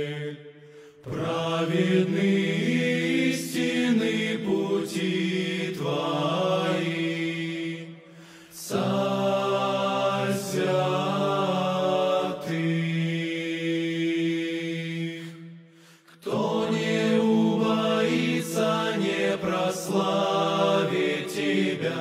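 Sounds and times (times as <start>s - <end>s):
male choir singing a cappella: 0.0s - 22.0s.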